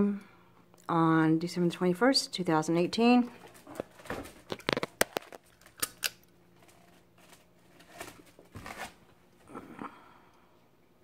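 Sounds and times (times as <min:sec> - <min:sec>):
faint rustling and handling: 0:06.5 - 0:09.5.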